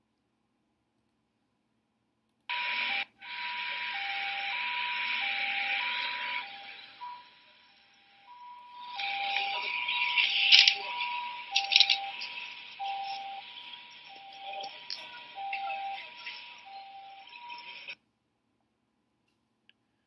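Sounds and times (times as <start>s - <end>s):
two-tone siren: 2.5s - 18.0s.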